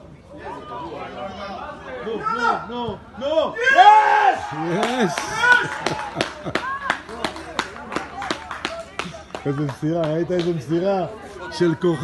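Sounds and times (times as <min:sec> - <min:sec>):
spectators shouting: 0:03.5 - 0:07.0
people clapping: 0:04.6 - 0:10.6.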